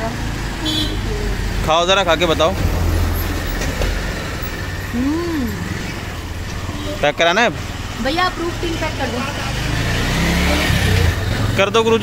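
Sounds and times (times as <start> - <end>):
traffic engine rumble: 0.0 - 12.0.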